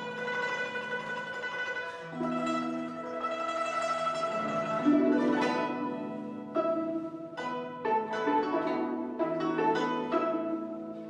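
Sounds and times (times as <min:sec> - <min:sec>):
hammered dulcimer tremolo: 0:00.0 - 0:11.0
zither tremolo melody: 0:00.0 - 0:11.0.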